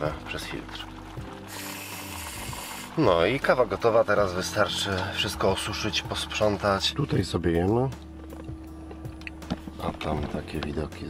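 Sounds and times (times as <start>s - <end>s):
coffee press hissing: 0.0s - 8.2s.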